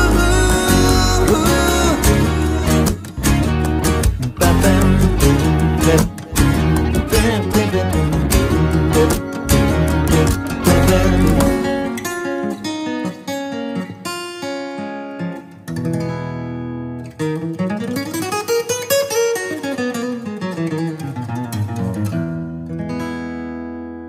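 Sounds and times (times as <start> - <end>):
acoustic guitar playing: 0.0 - 24.0.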